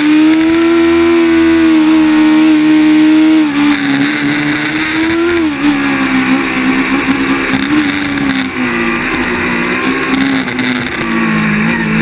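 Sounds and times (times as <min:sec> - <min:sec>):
race car engine at high revs: 0:00.0 - 0:12.0.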